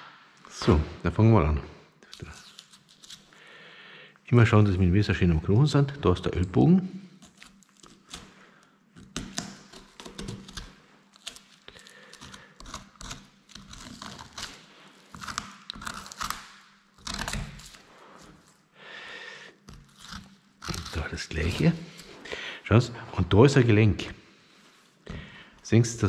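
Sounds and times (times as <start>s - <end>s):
knife cutting and scraping bone: 7.2s - 18.5s, 19.6s - 22.1s.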